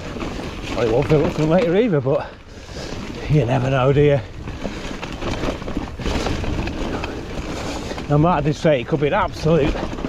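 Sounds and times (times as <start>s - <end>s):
bike knocks and rattles: 0.0s - 2.4s, 3.1s - 10.0s
bike tyre rumble on dirt: 0.0s - 10.0s.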